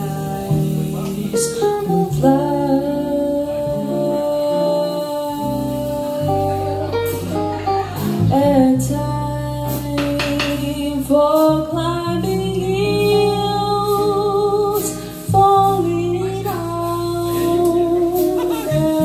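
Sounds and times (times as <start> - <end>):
drums: 0.0 - 19.0
electric bass: 0.0 - 19.0
electric guitar: 0.0 - 19.0
woman singing jazz ballad: 0.0 - 19.0.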